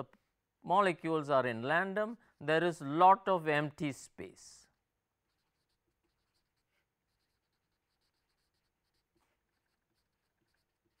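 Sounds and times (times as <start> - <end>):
marker writing on paper: 5.2 - 11.0.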